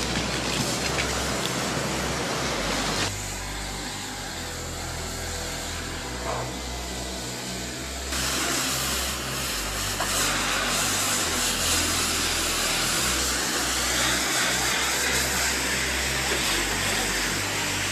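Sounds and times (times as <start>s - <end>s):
pressure washer spraying: 0.0s - 3.4s, 4.2s - 17.9s.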